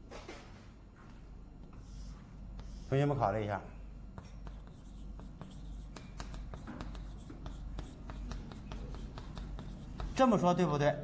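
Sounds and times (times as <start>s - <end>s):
chalk writing on a blackboard: 1.8s - 3.2s, 4.2s - 10.5s.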